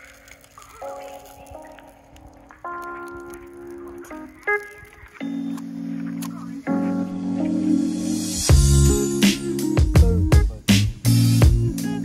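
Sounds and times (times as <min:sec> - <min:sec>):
sustained music chords: 0:05.2 - 0:12.0.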